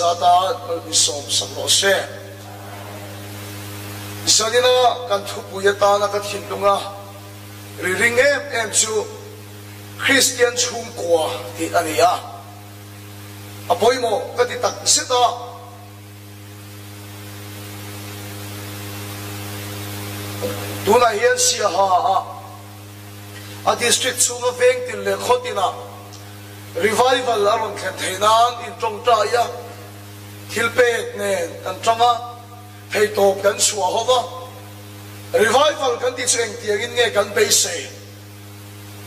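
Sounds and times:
low electrical hum: 0.0 - 39.0
microphone hiss: 0.0 - 39.0.

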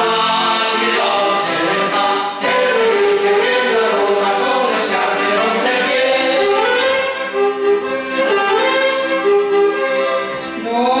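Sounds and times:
accordion: 0.0 - 11.0
saxophone: 1.7 - 11.0.

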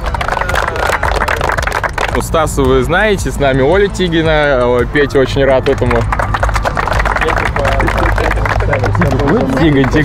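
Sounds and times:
people clapping: 0.0 - 10.0.

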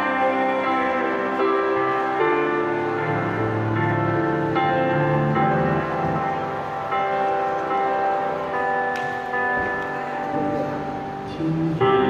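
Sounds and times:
digital keyboard chords: 0.0 - 12.0.

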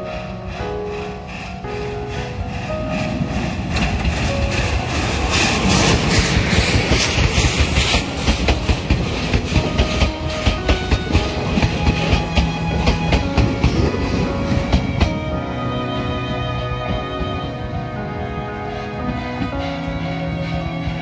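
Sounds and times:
steam locomotive passing: 0.0 - 21.0
train wheels clacking over rail joints: 0.6 - 15.3.

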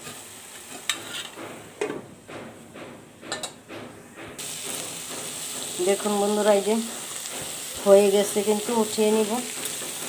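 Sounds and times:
food sizzling in frying pan: 0.0 - 1.4, 4.4 - 10.0.

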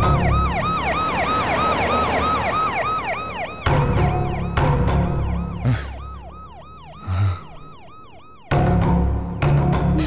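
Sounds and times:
siren yelping: 0.0 - 4.6, 5.2 - 8.6.

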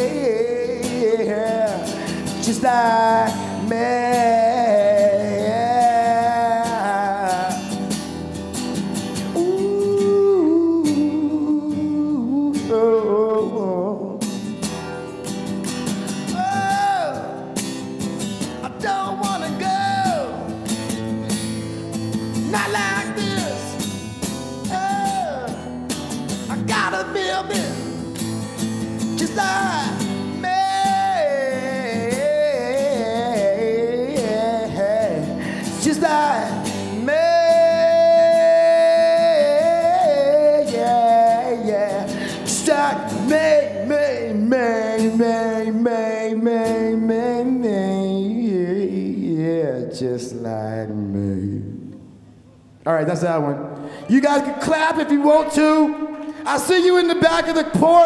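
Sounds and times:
man singing into a microphone: 0.0 - 8.2, 9.2 - 15.2, 16.0 - 17.7, 18.5 - 20.6, 21.7 - 25.7, 26.4 - 28.1, 29.0 - 52.1, 53.0 - 58.0
guitar accompaniment: 0.0 - 58.0.

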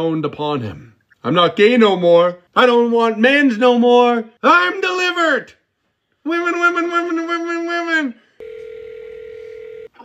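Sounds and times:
telephone dial tone: 8.4 - 10.0.

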